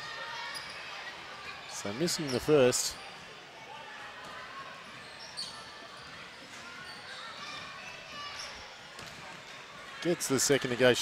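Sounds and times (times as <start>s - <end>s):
faint crowd chatter: 0.0s - 11.0s
high shoe squeak: 5.0s - 6.2s.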